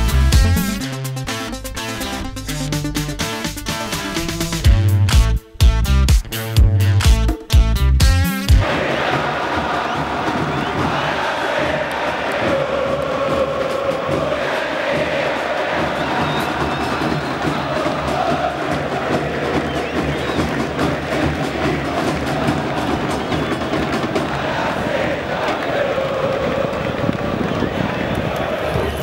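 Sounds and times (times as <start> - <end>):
stadium crowd singing and chanting: 8.6 - 29.0.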